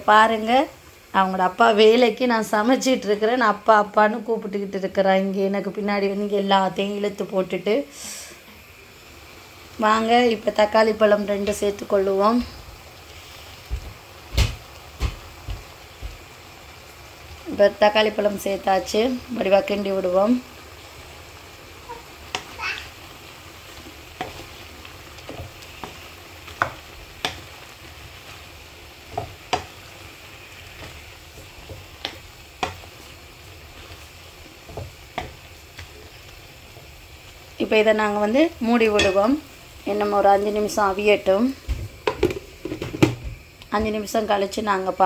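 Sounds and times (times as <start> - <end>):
food sizzling in a frying pan: 0.0 - 45.0
spatula knocking and scraping pan: 13.6 - 16.3, 23.7 - 36.2, 38.8 - 39.4, 41.6 - 44.1.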